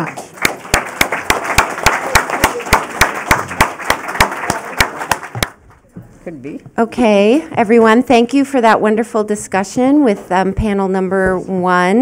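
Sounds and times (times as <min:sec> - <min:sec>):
audience applauding: 0:00.0 - 0:05.6
sharp claps close to microphone: 0:00.0 - 0:05.8.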